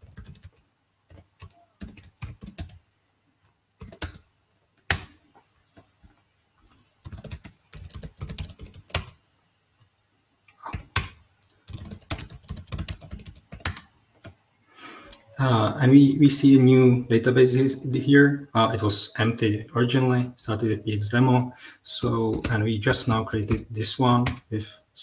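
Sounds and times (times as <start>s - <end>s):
computer keyboard typing: 0.0s - 2.8s, 3.4s - 5.2s, 6.6s - 9.2s, 10.6s - 13.9s, 22.1s - 24.5s.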